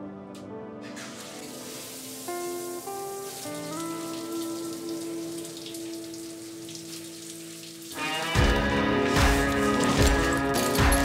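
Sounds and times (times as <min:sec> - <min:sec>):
background music of held notes: 0:00.0 - 0:11.0
shower head spraying water: 0:00.9 - 0:10.9.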